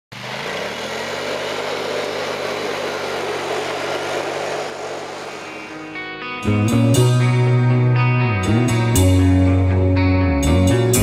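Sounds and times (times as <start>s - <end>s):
atv engine running: 0.1s - 7.5s.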